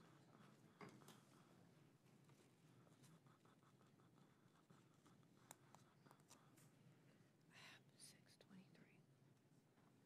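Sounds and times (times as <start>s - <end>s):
faint whisper: 7.5s - 9.2s.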